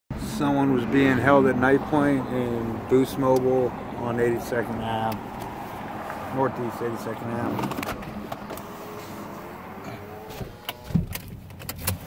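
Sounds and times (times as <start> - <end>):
car cabin rumble: 6.9 - 12.0.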